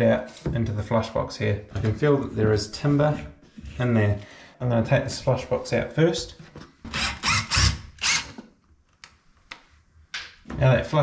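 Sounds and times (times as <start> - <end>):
cordless drill running: 7.0 - 8.4.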